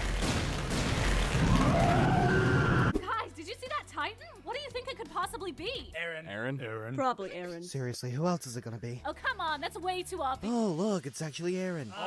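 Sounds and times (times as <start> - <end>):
loud harsh monster roar: 1.4 - 2.9.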